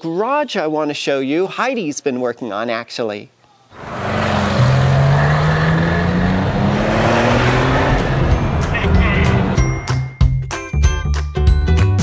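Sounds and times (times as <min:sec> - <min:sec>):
car engine accelerating: 0:03.8 - 0:10.1
loud rushing noise: 0:04.8 - 0:09.7.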